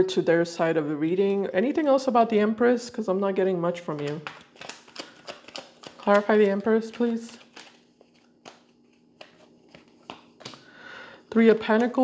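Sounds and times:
cards clicking and rustling: 3.9s - 10.7s.

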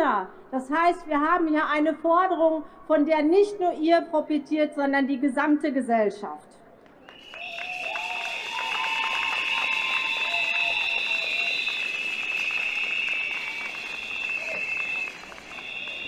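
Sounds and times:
crowd clapping: 6.8s - 16.0s
crowd blowing whistles: 7.0s - 16.0s.

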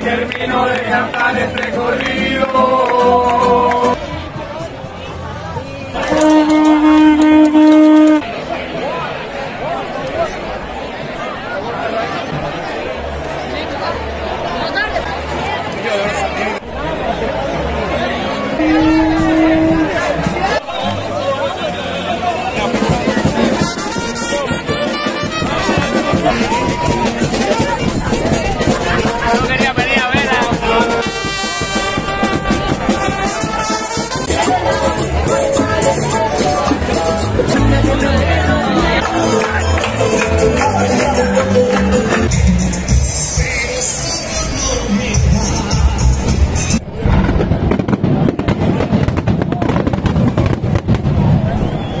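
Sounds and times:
music: 0.0s - 8.2s, 18.9s - 46.8s
brass street band playing: 0.0s - 8.7s, 11.8s - 52.0s
crowd voices: 0.0s - 52.0s
fireworks bangs and crackles: 46.8s - 52.0s.

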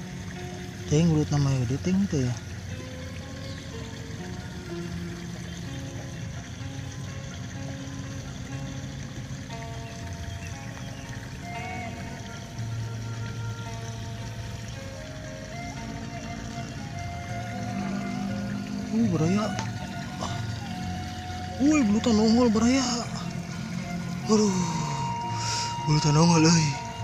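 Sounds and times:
background music with held notes: 0.0s - 27.0s.

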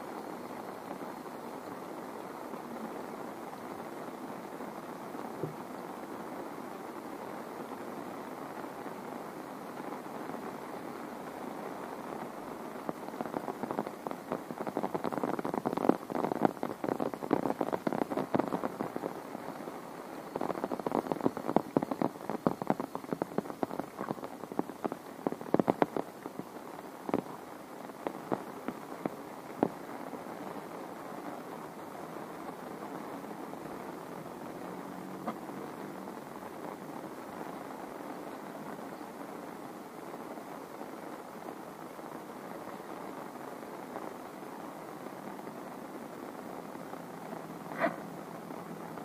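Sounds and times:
large raindrops tapping: 0.0s - 49.0s
steady rain hiss: 0.0s - 49.0s.

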